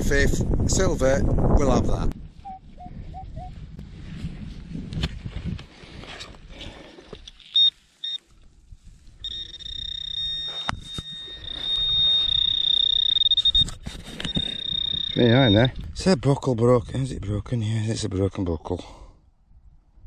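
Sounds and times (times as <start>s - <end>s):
short beeps: 7.5s - 8.2s, 9.2s - 15.8s
steady high-pitched tone: 9.2s - 15.8s.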